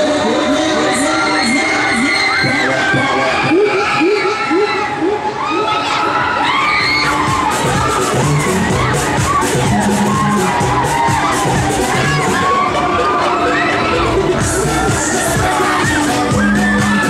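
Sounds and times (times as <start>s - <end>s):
ride music with steady beat: 0.0s - 17.0s
riders screaming and shouting: 0.0s - 17.0s.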